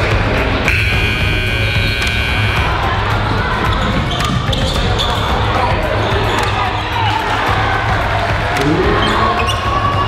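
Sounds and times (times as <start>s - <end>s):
music: 0.0s - 10.0s
voices of players and crowd: 0.0s - 10.0s.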